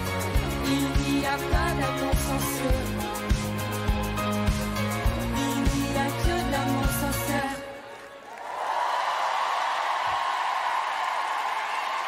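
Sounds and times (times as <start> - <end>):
audience applauding and cheering: 3.2 - 12.0.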